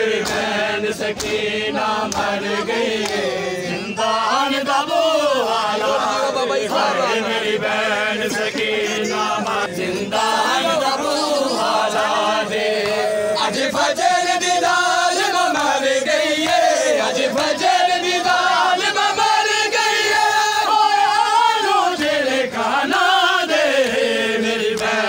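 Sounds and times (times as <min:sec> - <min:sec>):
men chanting in unison: 0:00.0 - 0:25.0.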